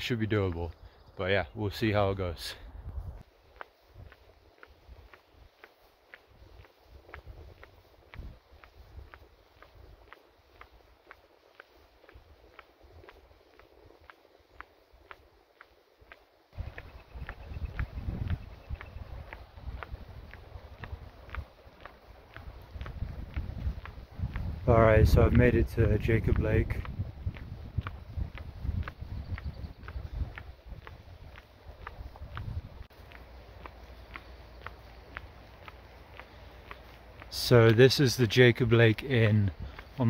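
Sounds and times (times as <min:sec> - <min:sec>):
footsteps on asphalt: 0:00.0 - 0:40.0
wind rumble on microphone: 0:02.4 - 0:05.2, 0:06.3 - 0:10.6, 0:16.6 - 0:33.1.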